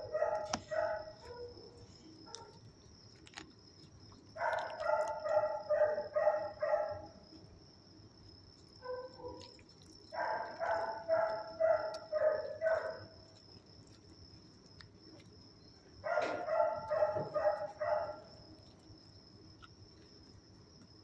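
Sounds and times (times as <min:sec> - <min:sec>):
dog yipping: 0:00.0 - 0:02.6, 0:04.4 - 0:07.1, 0:08.8 - 0:13.1, 0:16.0 - 0:18.3.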